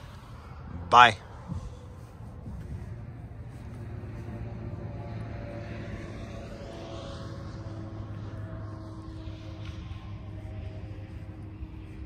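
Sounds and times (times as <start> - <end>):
faint higher hums: 0.0 - 12.0
low engine drone: 0.0 - 12.0.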